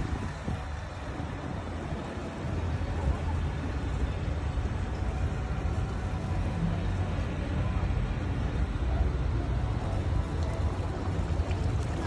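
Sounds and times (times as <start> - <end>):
boat motor rumbling: 0.0 - 12.0
water wash: 0.0 - 12.0.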